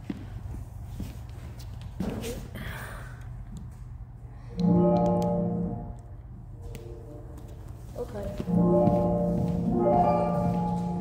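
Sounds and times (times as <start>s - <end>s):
light footsteps on floor: 0.0s - 2.4s, 6.6s - 11.0s
low steady hum: 0.0s - 11.0s.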